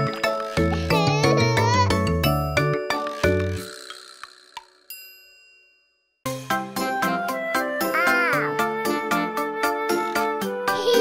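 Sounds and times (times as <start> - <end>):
light bell-like dings: 4.9 - 6.2
children's song: 6.8 - 11.0.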